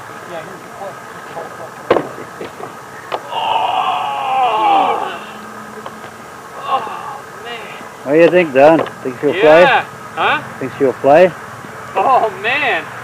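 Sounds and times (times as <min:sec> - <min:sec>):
distant indistinct voices: 0:00.0 - 0:13.0.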